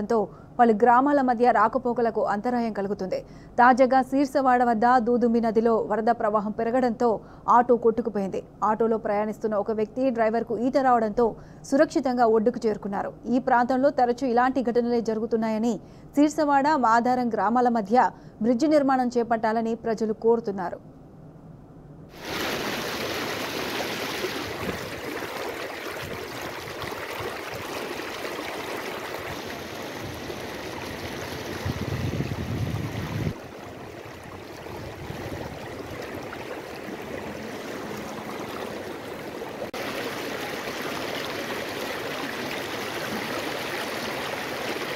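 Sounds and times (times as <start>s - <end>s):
floodwater rushing: 22.1s - 44.9s.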